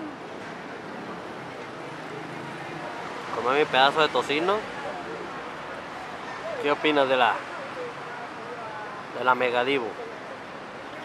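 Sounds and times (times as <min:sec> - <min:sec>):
traffic murmur: 0:00.0 - 0:11.0.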